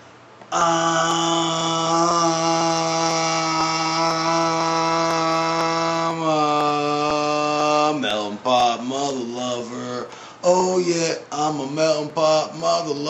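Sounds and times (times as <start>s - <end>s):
man holding long vocal note: 0.5s - 13.0s.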